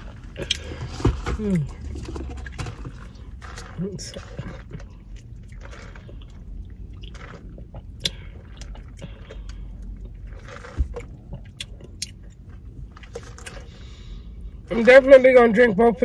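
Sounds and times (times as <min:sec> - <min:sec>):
chewing and swallowing: 0:00.0 - 0:14.7.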